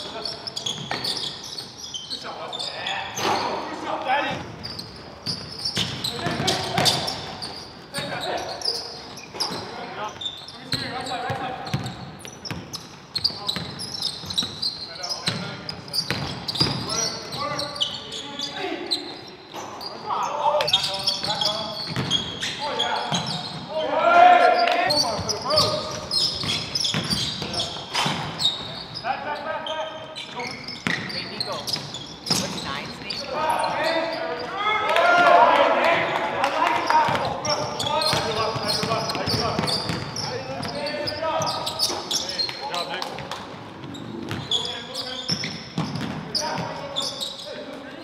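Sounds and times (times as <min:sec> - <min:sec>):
basketball bouncing on wooden floor: 0:16.1 - 0:16.9, 0:21.9 - 0:22.2, 0:37.1 - 0:40.8.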